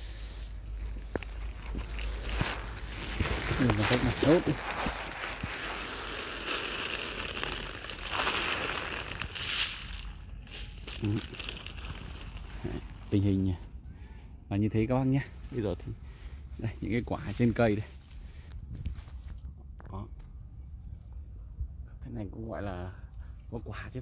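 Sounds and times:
leaves and twigs rustling: 0:00.4 - 0:13.8, 0:15.0 - 0:19.8.

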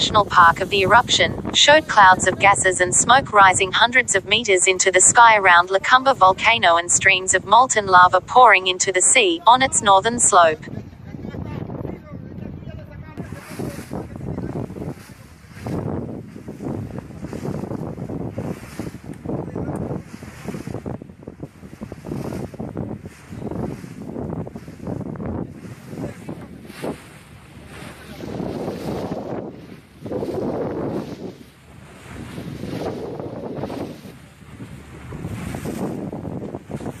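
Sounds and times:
wind buffeting microphone: 0:00.0 - 0:04.5, 0:09.7 - 0:37.0
open sea: 0:00.0 - 0:37.0.

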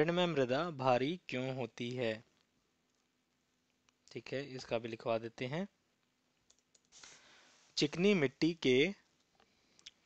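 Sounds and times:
man speaking: 0:00.0 - 0:02.3, 0:04.1 - 0:05.8, 0:07.8 - 0:09.1
soft hiss: 0:00.3 - 0:10.0
computer clicks: 0:06.4 - 0:07.0.

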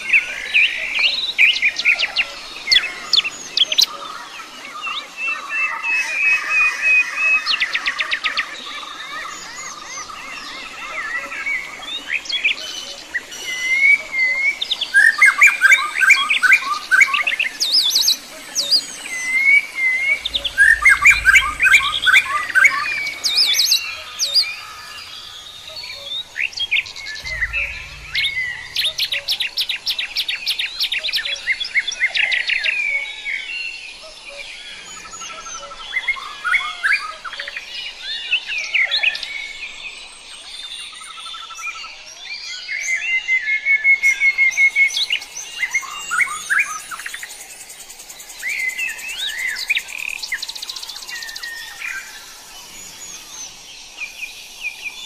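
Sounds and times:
songbirds chirping and singing: 0:00.0 - 0:55.0
low rumbles: 0:20.1 - 0:24.2, 0:26.8 - 0:30.2.

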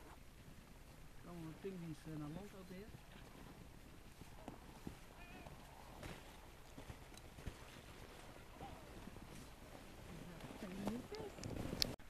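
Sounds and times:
faint low outdoor rumble: 0:00.0 - 0:12.0.

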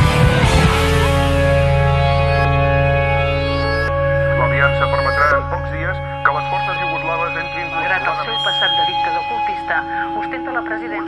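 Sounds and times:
sustained electronic tones: 0:00.7 - 0:11.0.

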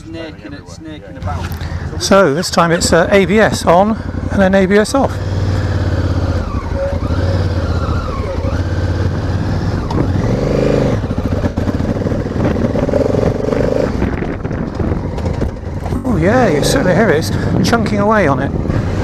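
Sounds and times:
motorcycle engine revving: 0:01.2 - 0:19.0.

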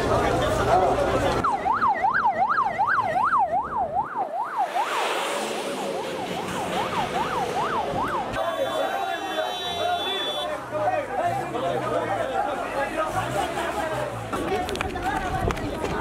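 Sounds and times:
passing vehicle noise: 0:00.0 - 0:16.0
emergency siren yelping: 0:01.4 - 0:09.2.

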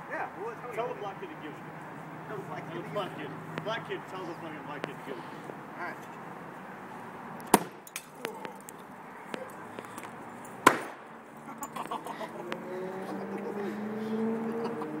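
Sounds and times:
glass tube breaking with sharp pops: 0:07.4 - 0:08.8.

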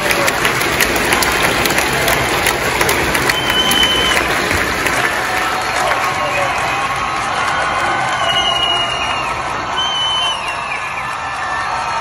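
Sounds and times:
crowd clapping and cheering: 0:00.0 - 0:12.0
short high whistle: 0:03.3 - 0:04.2, 0:08.2 - 0:11.2.

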